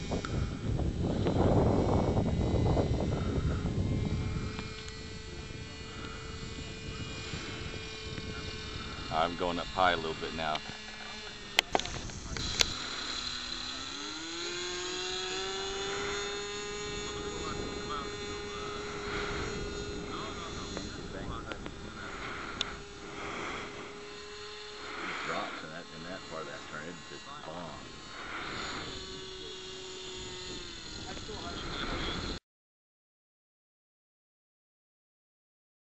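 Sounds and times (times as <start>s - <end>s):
model aircraft motor droning: 0.0s - 32.4s.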